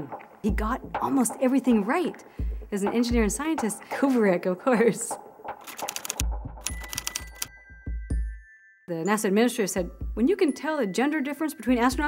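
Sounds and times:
typewriter keys clacking: 5.6 - 7.5.

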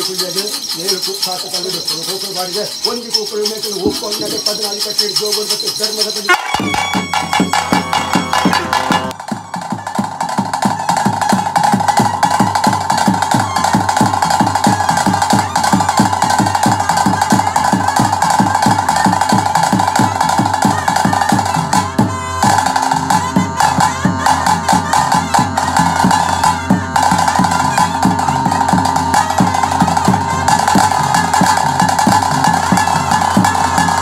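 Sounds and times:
drums beaten in quick rhythm: 0.0 - 34.0
held flute line: 0.0 - 34.0.

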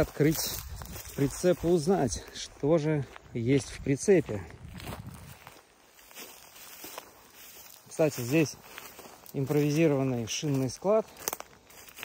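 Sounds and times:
footsteps in dry grass: 0.0 - 12.0.

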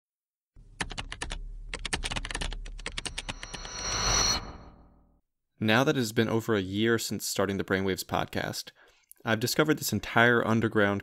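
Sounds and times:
high ringing tone: 3.0 - 5.0.

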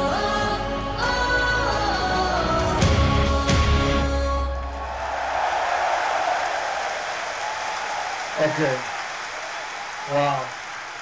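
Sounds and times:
audience applauding: 4.8 - 11.0.

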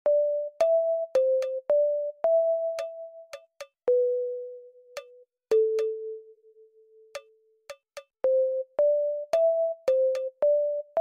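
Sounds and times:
light percussion ticks: 0.6 - 1.6, 2.8 - 3.9, 5.0 - 6.0, 7.1 - 8.2, 9.3 - 10.4.

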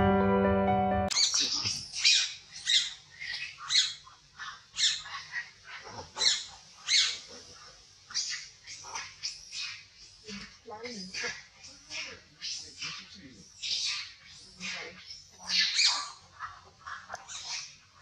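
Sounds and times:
intro music: 0.0 - 1.1
high-pitched animal calls: 1.1 - 7.5, 8.1 - 17.8.

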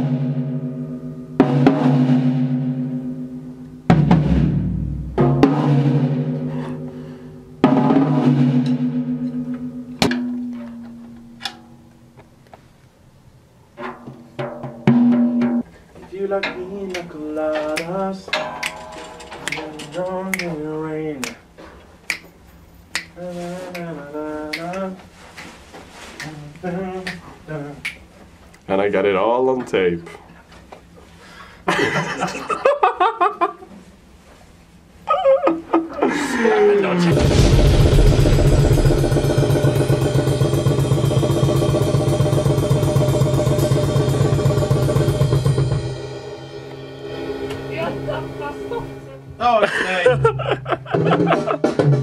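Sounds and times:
man singing: 16.3 - 18.4, 19.5 - 21.4, 23.2 - 25.0
fast metal drumming: 17.7 - 21.3, 37.0 - 49.1
cymbal wash: 17.8 - 21.4, 37.1 - 49.5
low droning chord: 18.3 - 20.4, 37.1 - 49.8
finger snaps: 20.3 - 20.6, 22.1 - 23.9, 24.5 - 25.6.

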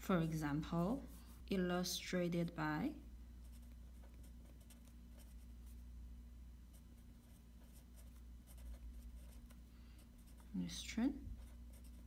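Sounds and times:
low steady hum: 0.0 - 12.0
pen scratching on paper: 3.4 - 5.8, 6.7 - 9.6, 10.2 - 10.6, 11.3 - 12.0.

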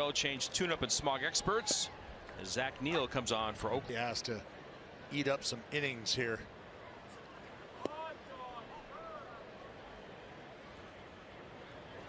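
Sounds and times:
crowd ambience: 0.0 - 12.0
voices calling in crowd: 0.0 - 12.0.

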